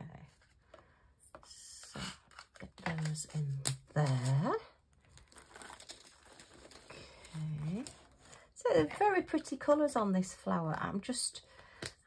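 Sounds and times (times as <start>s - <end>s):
plastic bags crinkling: 4.0s - 8.4s.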